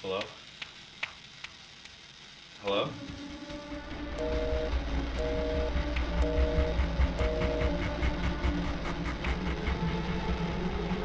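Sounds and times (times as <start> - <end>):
faint crackling hiss: 0.0 - 6.9.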